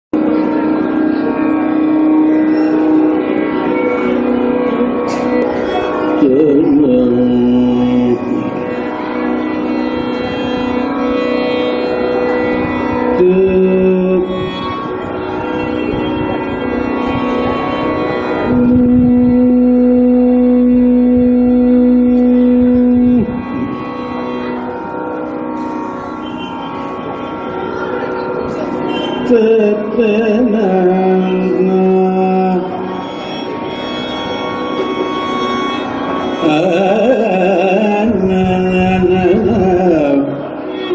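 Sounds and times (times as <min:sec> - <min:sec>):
accompaniment with steady drone: 0:00.1 - 0:40.9
violin holding note: 0:00.2 - 0:30.0, 0:30.7 - 0:40.9
person singing long note: 0:00.2 - 0:40.9.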